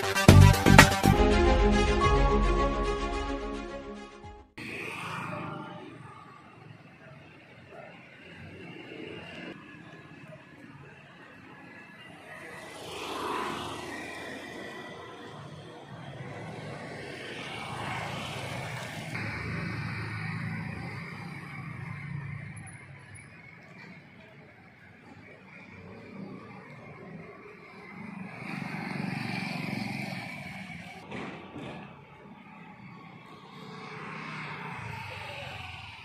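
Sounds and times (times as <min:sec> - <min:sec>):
car road and engine noise: 0:04.4 - 0:36.0.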